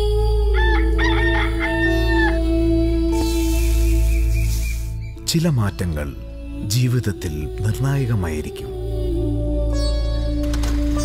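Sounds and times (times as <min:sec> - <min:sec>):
ambient music drone: 0:00.0 - 0:11.0
rooster crowing: 0:00.6 - 0:02.4.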